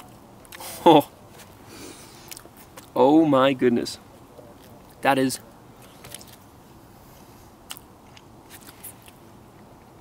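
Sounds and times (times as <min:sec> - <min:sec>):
person chewing soft food: 0:01.8 - 0:02.9, 0:07.2 - 0:10.0.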